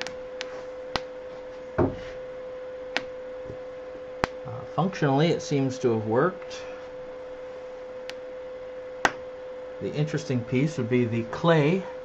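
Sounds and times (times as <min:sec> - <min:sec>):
steady single-pitched hum: 0:00.0 - 0:12.0.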